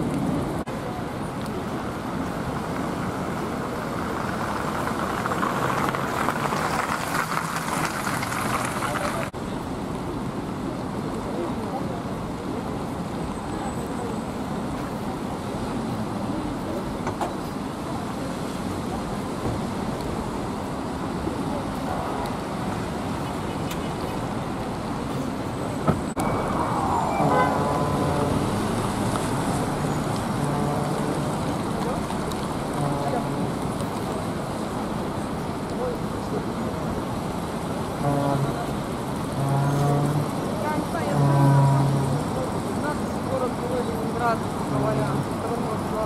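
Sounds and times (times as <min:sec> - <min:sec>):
traffic on wet road: 0:00.0 - 0:46.0
short falling tone: 0:26.2 - 0:29.1.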